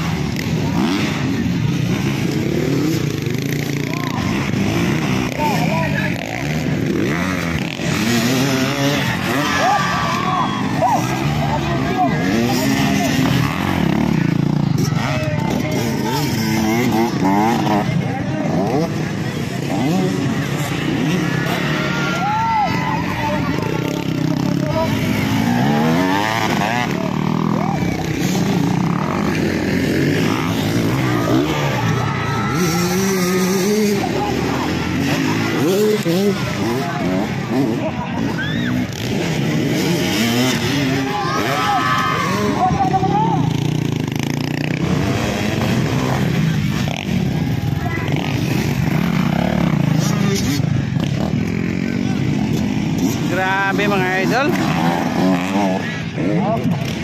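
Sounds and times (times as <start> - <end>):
crowd voices: 0.0 - 57.0
dirt bike engines revving: 0.0 - 57.0.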